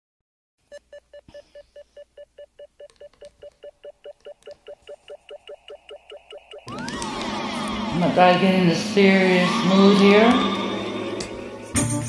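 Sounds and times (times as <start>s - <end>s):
electronic beeps: 0.7s - 7.0s.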